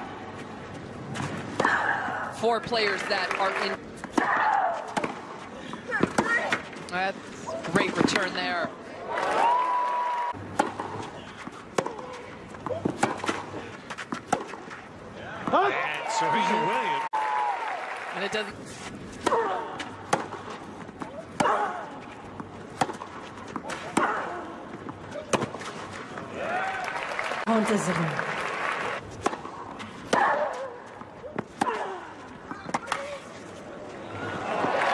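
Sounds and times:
tennis ball struck by rackets: 10.5s - 14.7s, 19.2s - 21.9s, 22.7s - 26.0s, 29.2s - 31.9s.

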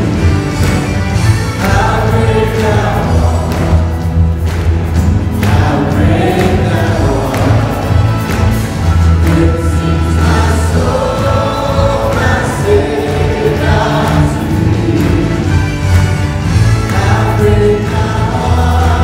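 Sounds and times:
band playing a hymn: 0.0s - 19.0s
group of voices singing: 0.0s - 19.0s
sustained bass notes: 0.0s - 19.0s.

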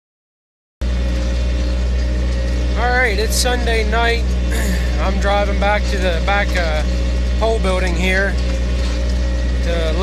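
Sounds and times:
tractor engine running: 0.8s - 10.0s.

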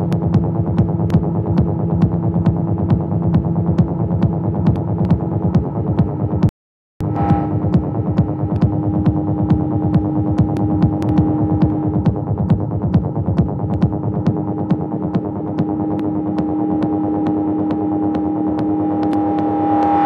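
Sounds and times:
sharp ticks: 0.0s - 6.1s, 7.6s - 20.0s
rumbling kick drum pattern: 0.0s - 20.0s
steady droning tone: 0.0s - 20.0s.

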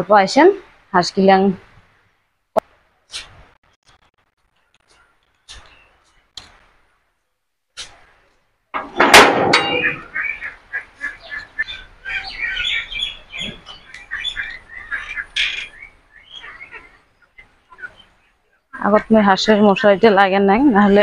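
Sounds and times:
birds chirping: 4.0s - 7.3s, 8.8s - 21.0s
sudden loud clatter: 8.8s - 10.0s.

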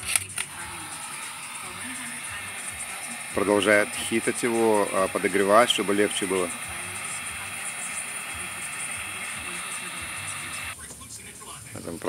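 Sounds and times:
heat gun blowing hot air: 0.0s - 10.8s.

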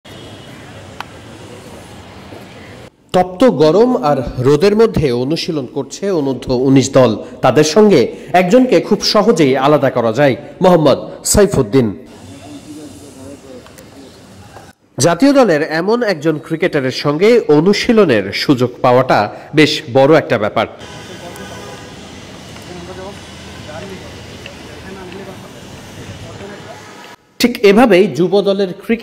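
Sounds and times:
faint distant voices: 12.1s - 14.8s
steady hiss: 12.1s - 14.8s, 20.8s - 27.3s.

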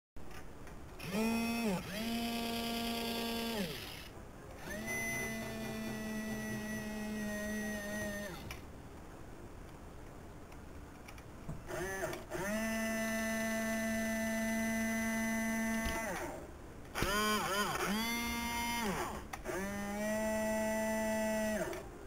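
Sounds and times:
small electric toy motors whining: 1.0s - 8.6s, 11.7s - 21.9s.

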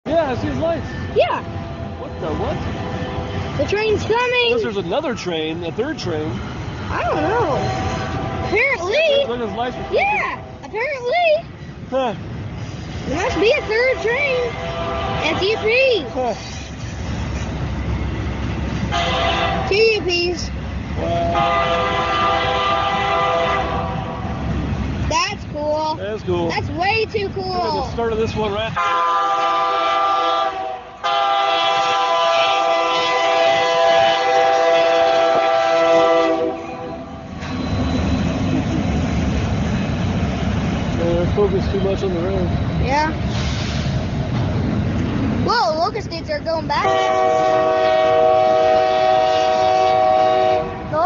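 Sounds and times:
diesel locomotives rumbling: 0.0s - 51.0s.

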